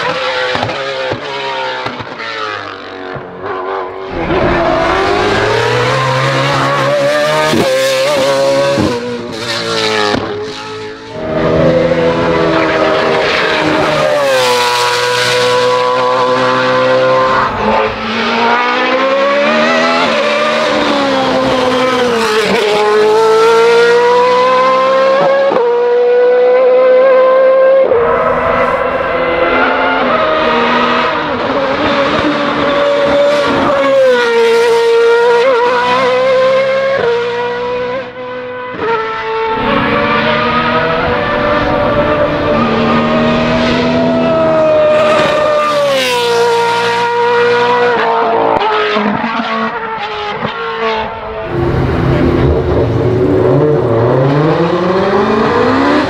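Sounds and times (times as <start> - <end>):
race car engines at full throttle: 0.0 - 56.0.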